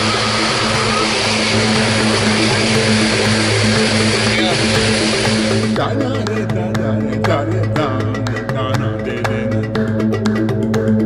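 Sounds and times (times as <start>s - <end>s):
propeller plane engine drone: 0.0s - 5.8s.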